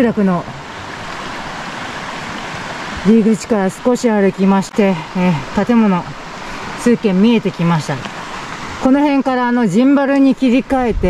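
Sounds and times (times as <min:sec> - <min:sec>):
mountain stream running: 0:00.0 - 0:11.0.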